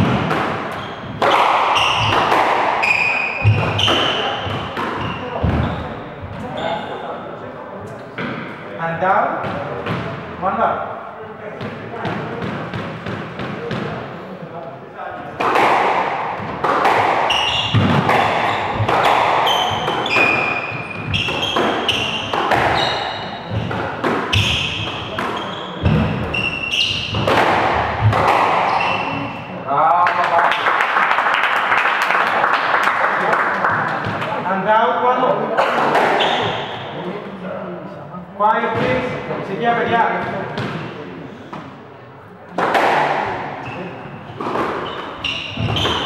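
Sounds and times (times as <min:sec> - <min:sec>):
squash ball cracks: 0:00.0 - 0:05.6, 0:15.4 - 0:22.8, 0:27.1 - 0:28.9
shoes squeaking on wooden floor: 0:00.0 - 0:07.1, 0:16.3 - 0:29.6, 0:36.0 - 0:36.9, 0:43.3 - 0:46.0.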